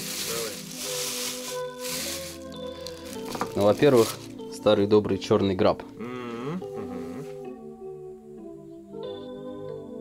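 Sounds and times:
plastic bag rustling: 0.0 - 4.7
background music with held notes: 0.0 - 10.0.

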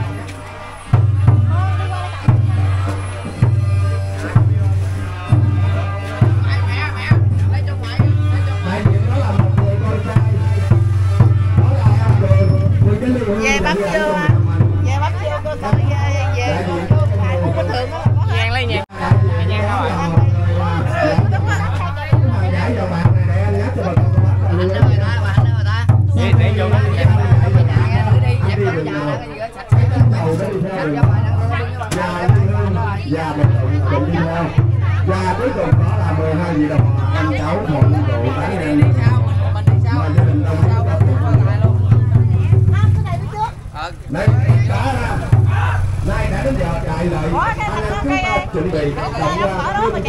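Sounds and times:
crowd talking: 0.0 - 50.0
deep drum booming: 0.0 - 50.0.

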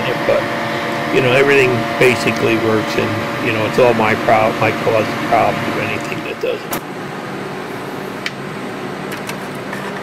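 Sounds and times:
ventilation fans droning: 0.0 - 10.0.

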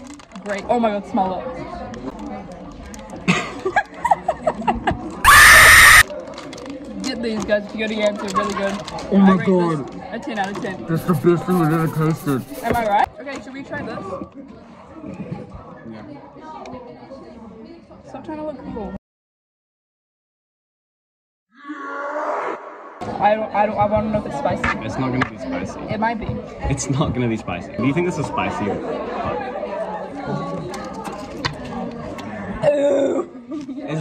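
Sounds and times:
loud distorted shriek: 5.3 - 6.0, 21.6 - 23.2.

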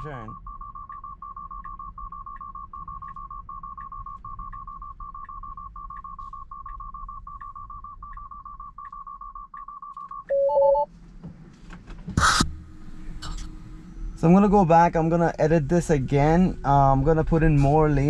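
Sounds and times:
high warbling alarm beep: 0.0 - 10.9
faint tyre and road rumble: 0.0 - 18.0.

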